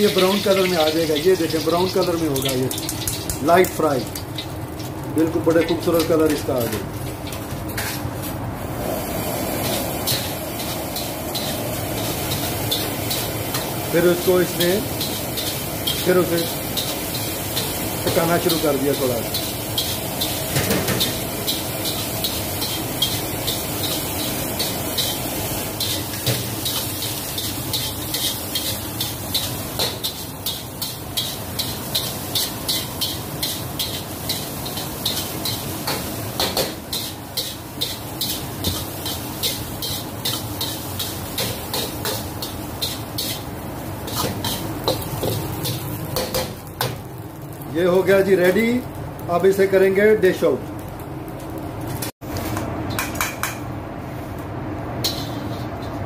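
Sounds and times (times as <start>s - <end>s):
food frying: 0.0s - 56.0s
gas burner rushing: 8.5s - 46.7s
metal spatula scraping a wok: 55.0s - 56.0s.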